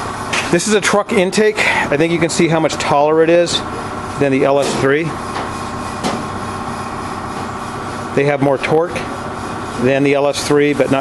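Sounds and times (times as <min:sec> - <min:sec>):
machinery hum and hiss: 0:00.0 - 0:11.0.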